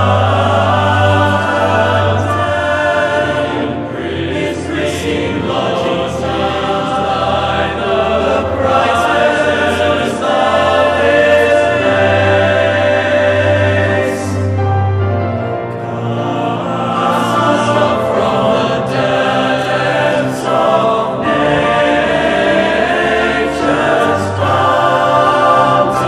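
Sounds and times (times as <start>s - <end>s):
boys' choir singing in harmony: 0.0s - 26.0s.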